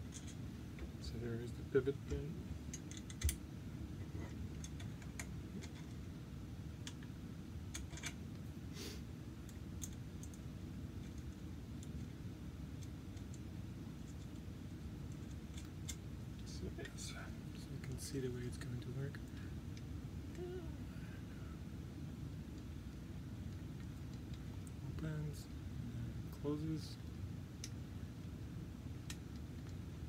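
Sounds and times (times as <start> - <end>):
steady low hum: 0.0 - 30.0
small metal parts clicking: 7.7 - 8.2.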